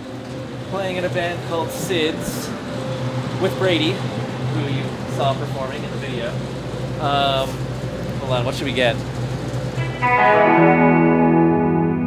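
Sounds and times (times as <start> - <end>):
low background hum: 0.0 - 10.3
electric guitar chord: 9.7 - 12.0.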